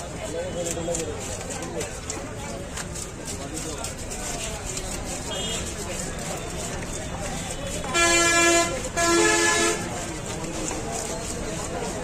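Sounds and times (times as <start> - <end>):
vehicle horn honks: 5.3 - 5.7, 7.9 - 9.9.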